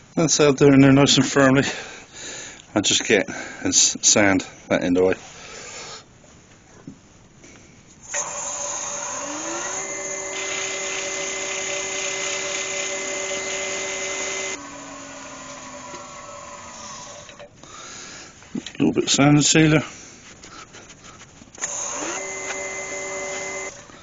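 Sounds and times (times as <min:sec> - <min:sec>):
wood lathe motor whine: 0:08.1 - 0:17.4, 0:21.6 - 0:23.9.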